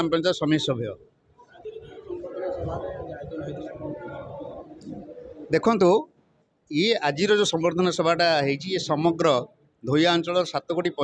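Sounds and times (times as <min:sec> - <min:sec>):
man talking: 0:00.0 - 0:01.0, 0:05.5 - 0:06.1, 0:06.7 - 0:11.0.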